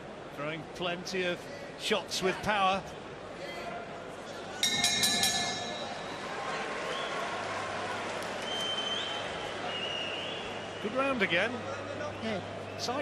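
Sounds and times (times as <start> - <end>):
arena crowd noise: 0.0 - 13.0
boxing ring bell struck: 4.6 - 6.3.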